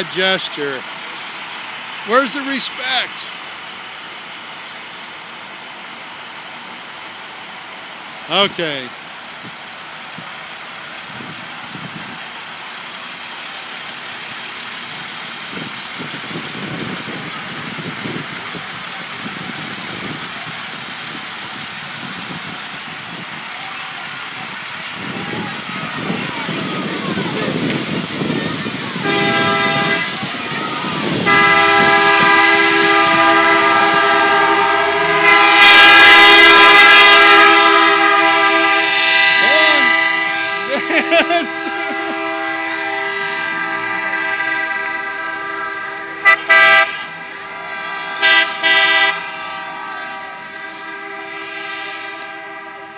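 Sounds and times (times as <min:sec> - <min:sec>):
bus horns honking: 0:00.0 - 0:03.8, 0:13.0 - 0:52.9
bus engines rumbling: 0:00.0 - 0:52.9.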